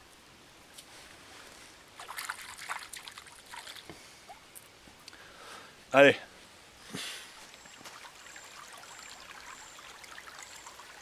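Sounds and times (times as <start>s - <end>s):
stream trickling over stones: 1.9s - 4.8s, 7.3s - 11.0s.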